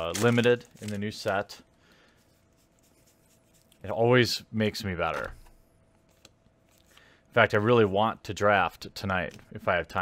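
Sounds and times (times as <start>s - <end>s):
man speaking: 0.0s - 1.7s, 3.8s - 5.4s, 7.3s - 10.0s.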